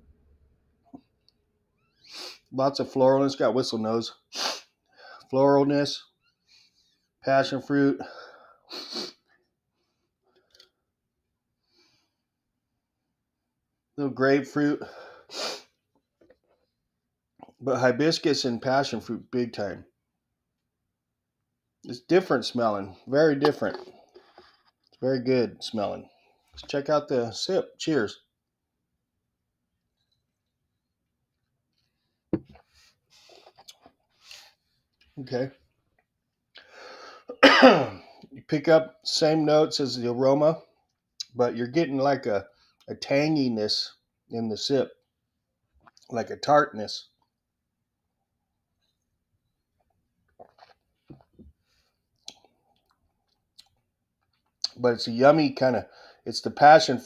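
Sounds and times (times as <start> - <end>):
person sniffing: 2.0 - 2.5, 4.3 - 5.2, 8.1 - 9.3, 14.8 - 15.8
man clearing his throat: 37.3 - 38.1.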